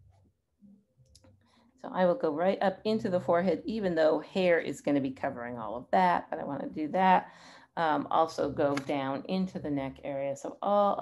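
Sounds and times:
woman speaking: 1.9s - 11.0s.

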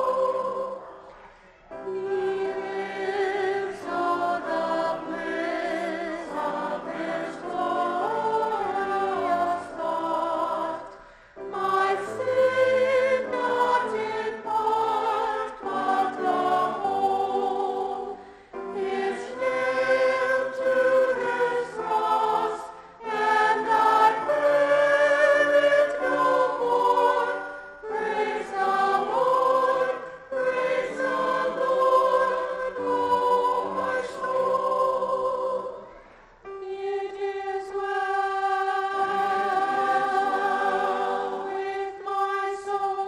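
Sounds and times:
church choir singing: 0.0s - 43.0s.

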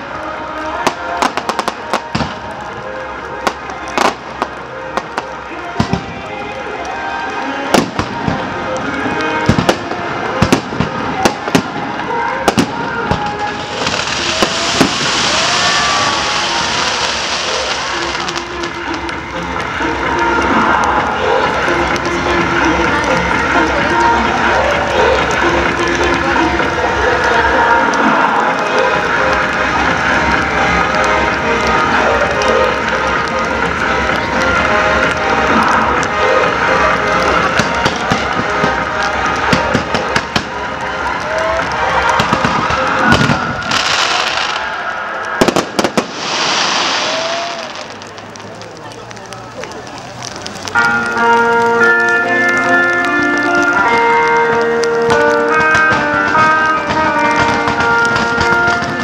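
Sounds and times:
music: 0.0s - 48.2s, 50.2s - 59.0s
crowd voices: 0.0s - 59.0s
fireworks bangs: 0.0s - 59.0s
loud hissing: 11.2s - 50.6s.

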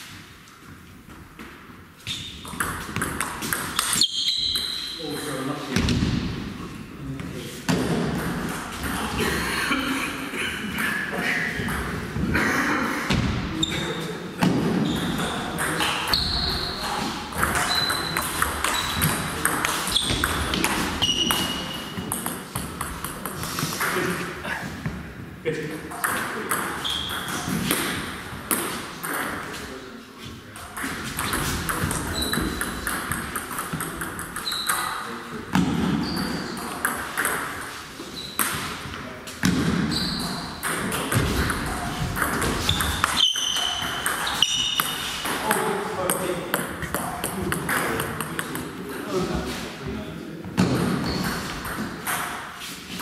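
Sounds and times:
table tennis balls clicking: 2.4s - 4.8s, 17.3s - 24.1s, 30.8s - 35.0s, 40.2s - 48.8s.

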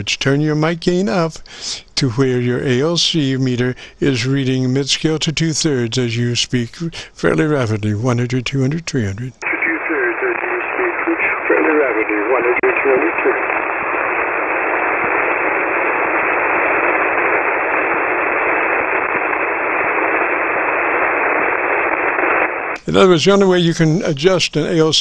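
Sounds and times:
radio band noise hiss: 0.0s - 25.0s
faint voice on radio: 8.8s - 13.6s.

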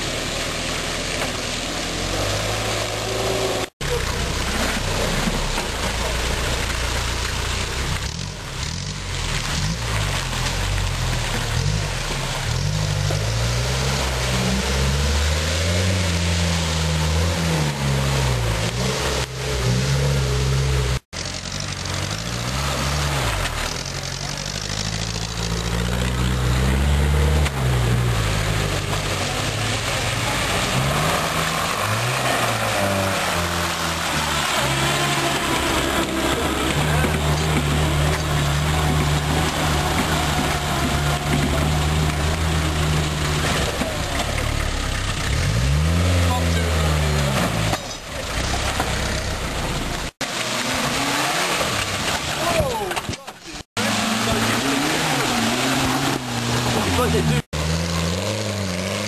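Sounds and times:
off-road engine revving under load: 0.0s - 52.8s, 53.6s - 59.0s.

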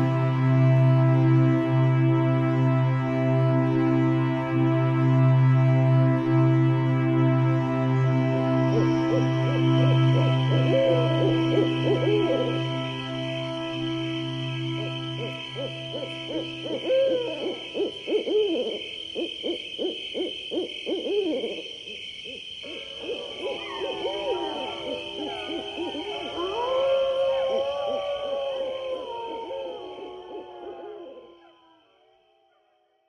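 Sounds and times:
low drone: 0.0s - 19.2s, 22.6s - 31.5s
wavering calls: 8.1s - 32.1s.

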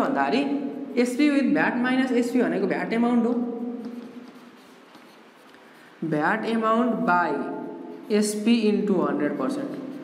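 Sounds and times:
marker writing on whiteboard: 2.2s - 10.0s.

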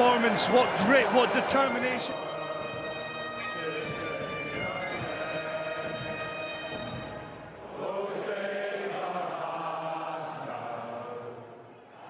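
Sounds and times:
bagpipe music: 0.0s - 7.6s
voices chanting together: 7.5s - 12.0s.

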